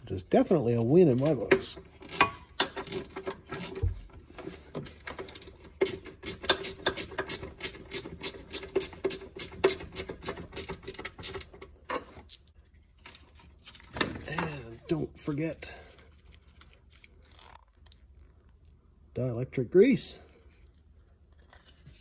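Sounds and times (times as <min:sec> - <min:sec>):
ratchet wrench clicking: 0:05.3 - 0:11.5.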